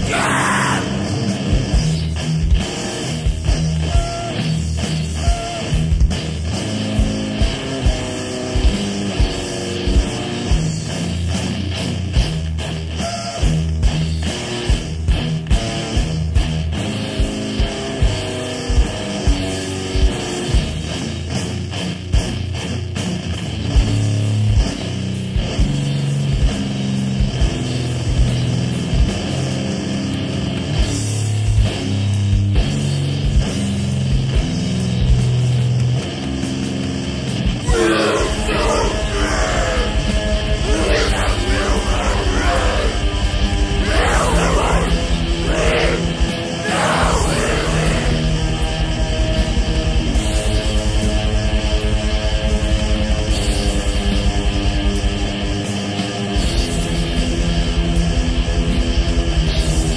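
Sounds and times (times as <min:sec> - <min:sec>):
distorted bass guitar: 0:00.0 - 0:59.9
distorted electric guitar: 0:00.0 - 0:59.9
doom metal band playing: 0:00.0 - 0:59.9.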